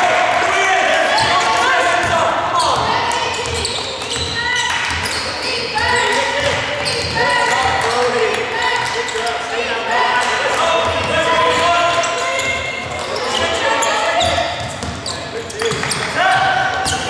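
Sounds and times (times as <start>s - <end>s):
sneakers squeaking: 1.0s - 17.0s
basketball bouncing: 2.0s - 5.2s, 14.2s - 16.1s.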